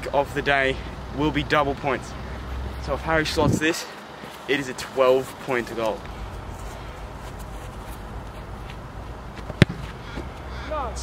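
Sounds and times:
boot kicking football thud: 0:09.4 - 0:10.3.

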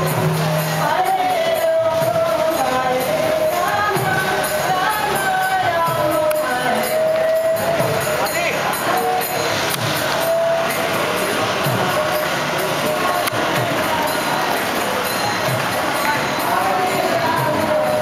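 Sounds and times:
crowd voices: 0:00.0 - 0:18.0
devotional street music: 0:00.0 - 0:18.0
jingling hand percussion: 0:00.0 - 0:18.0.

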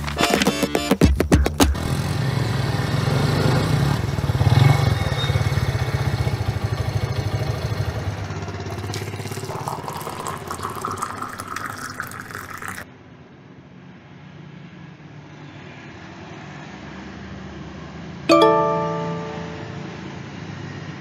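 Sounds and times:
motor scooter engine idling: 0:05.2 - 0:09.4.

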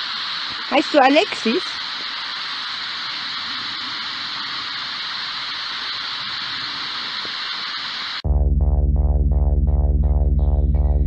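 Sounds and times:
radio static hiss: 0:00.0 - 0:08.2.

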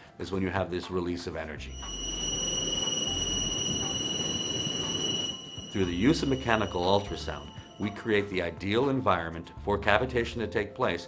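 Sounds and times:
high-pitched motor whine: 0:01.7 - 0:08.2.

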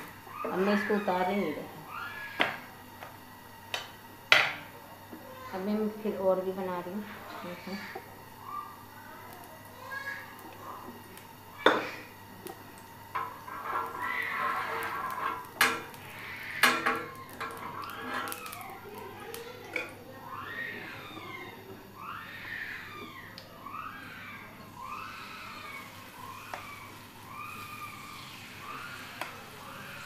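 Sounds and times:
metal spoon scraping on iron pan: 0:13.2 - 0:18.5.

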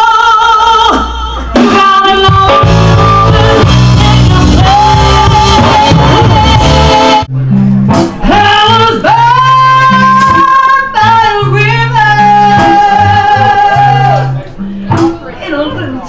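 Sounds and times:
woman singing blues: 0:00.0 - 0:07.3, 0:08.2 - 0:14.3
drums: 0:00.0 - 0:16.0
electric bass: 0:00.0 - 0:16.0.

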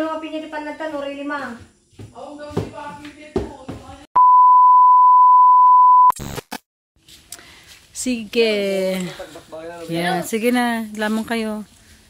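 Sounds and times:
steady electronic beep: 0:04.2 - 0:06.2.

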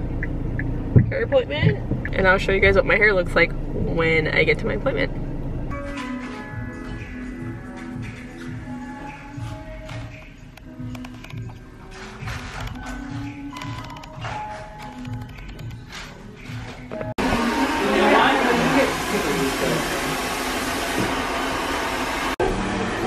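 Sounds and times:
background music with steady beat: 0:03.6 - 0:17.2
hair dryer rushing: 0:17.2 - 0:23.0.

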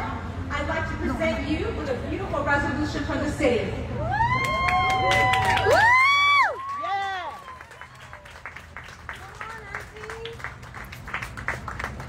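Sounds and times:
small crowd clapping: 0:04.3 - 0:12.0.

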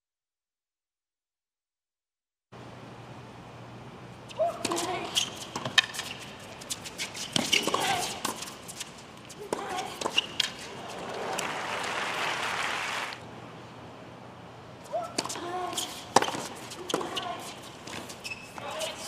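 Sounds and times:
racket striking tennis ball: 0:04.5 - 0:06.4, 0:15.1 - 0:17.3
crowd applauding: 0:10.9 - 0:13.2.

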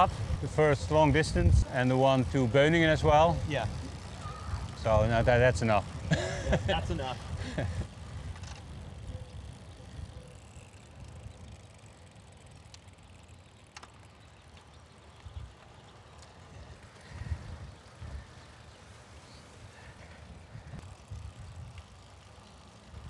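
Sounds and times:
bicycle tyres rolling: 0:00.0 - 0:23.0.

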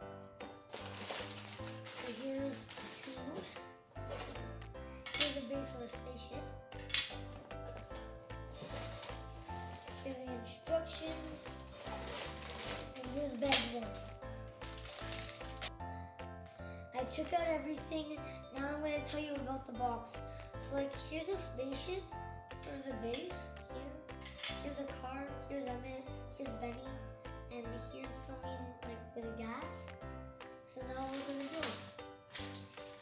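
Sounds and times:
background music: 0:00.0 - 0:33.0
plastic bags rustling: 0:00.7 - 0:05.5, 0:07.1 - 0:15.8, 0:30.9 - 0:33.0.

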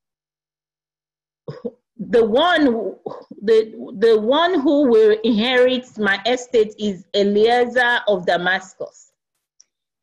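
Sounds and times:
person coughing: 0:01.5 - 0:01.8.

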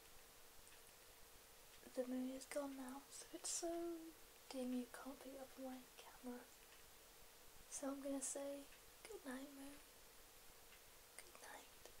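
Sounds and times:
faint steady hiss: 0:00.0 - 0:12.0
faint whisper: 0:01.8 - 0:06.5, 0:07.7 - 0:09.8, 0:11.2 - 0:12.0.

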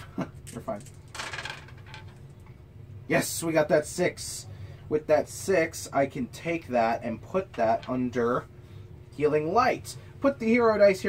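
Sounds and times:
dice rattling in hand: 0:00.5 - 0:02.2.

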